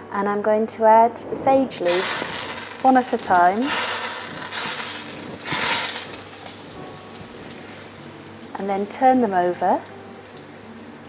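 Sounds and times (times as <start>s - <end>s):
leaves sizzling in hot oil: 1.8s - 11.0s.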